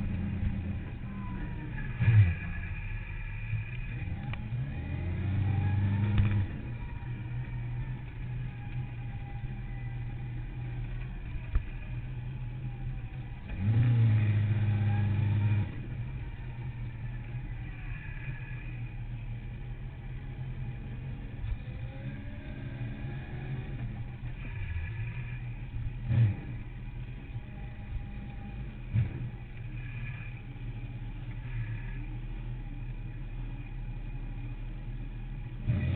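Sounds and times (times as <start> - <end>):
motorcycle engine revving: 0.0 - 35.9.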